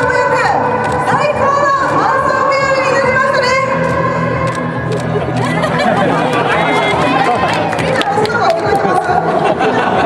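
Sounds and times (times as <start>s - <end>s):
woman talking into microphone: 0.0s - 3.8s, 7.2s - 9.3s
crowd chatter: 0.0s - 10.0s.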